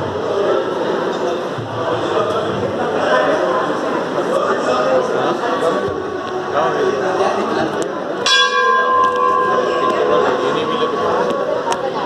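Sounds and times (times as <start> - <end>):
crowd chatter: 0.0 - 12.0
temple bell ringing: 8.2 - 12.0.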